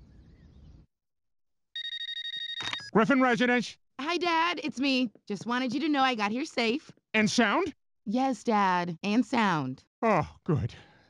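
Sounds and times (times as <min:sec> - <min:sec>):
phone ringing: 0:01.8 - 0:03.4.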